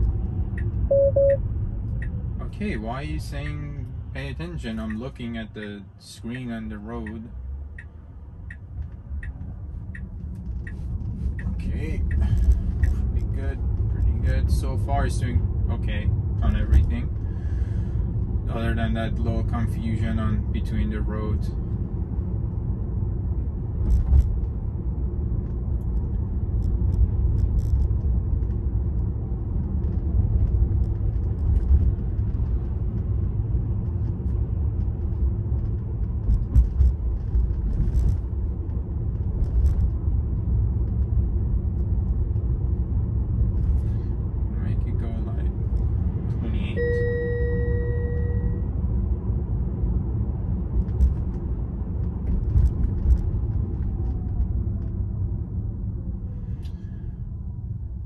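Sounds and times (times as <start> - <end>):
road and tyre rumble: 0.0 - 58.0
two-tone electronic chime: 0.9 - 1.4, 46.8 - 48.6.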